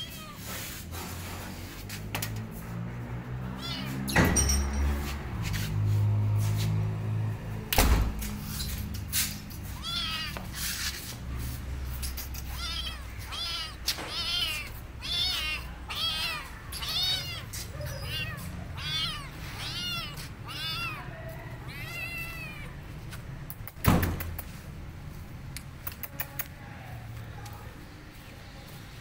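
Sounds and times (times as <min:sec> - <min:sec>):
kitten meowing: 0:00.0 - 0:00.5, 0:03.5 - 0:04.1, 0:09.6 - 0:10.6, 0:12.4 - 0:22.8
sharp thump: 0:23.8 - 0:24.3.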